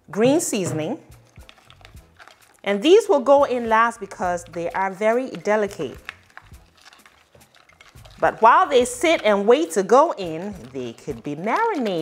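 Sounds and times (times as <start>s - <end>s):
wet squishing of seafood: 1.2s - 2.7s, 3.7s - 12.0s.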